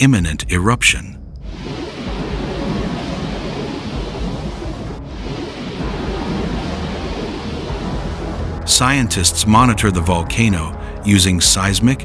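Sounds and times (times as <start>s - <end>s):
deep rumbling roar: 1.5s - 9.7s.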